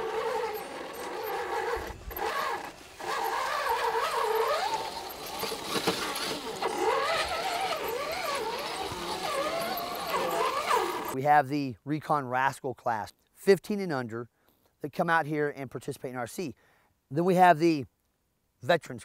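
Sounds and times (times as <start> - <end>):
electric motor and gears whining: 0.0 - 11.2.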